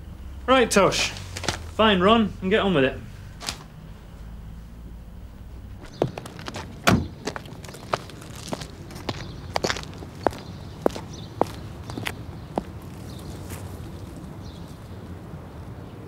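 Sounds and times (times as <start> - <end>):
outdoor background noise: 0.0 - 16.0
footsteps walking: 1.1 - 1.8, 5.8 - 14.9.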